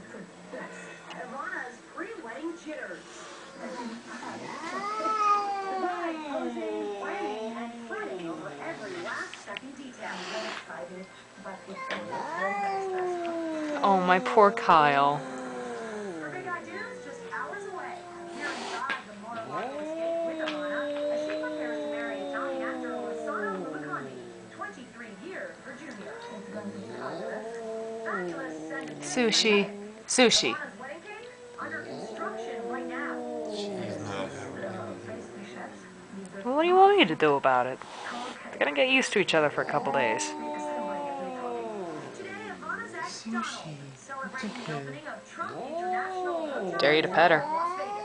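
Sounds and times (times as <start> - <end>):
cat yowling: 4.5 - 9.2, 11.8 - 25.0, 25.7 - 36.2, 39.3 - 43.1, 45.4 - 48.0.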